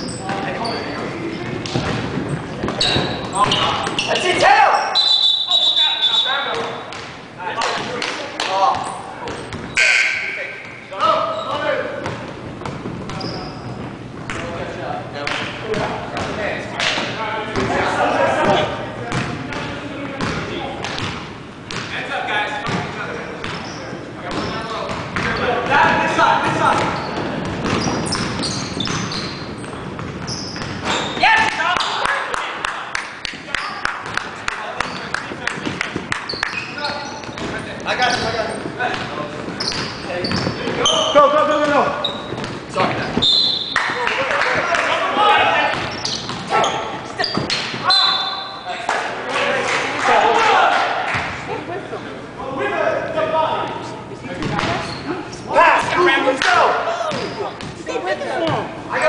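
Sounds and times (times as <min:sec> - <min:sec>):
players shouting: 0:43.8 - 0:47.0, 0:49.9 - 0:51.1.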